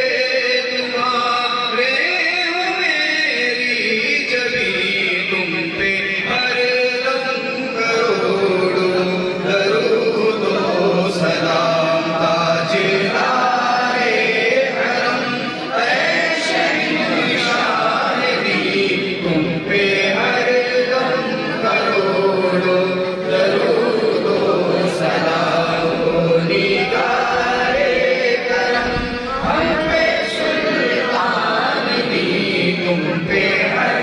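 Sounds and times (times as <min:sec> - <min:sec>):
men chanting together: 0:07.8 - 0:34.0.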